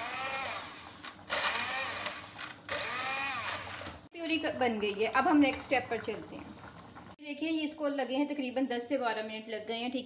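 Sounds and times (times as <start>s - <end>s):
hand blender motor whining: 0.0s - 4.0s.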